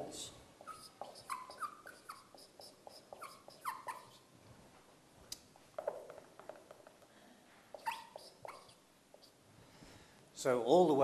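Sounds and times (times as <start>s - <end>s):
marker squeaking on whiteboard: 0.6s - 4.3s, 5.8s - 6.8s, 7.7s - 9.4s.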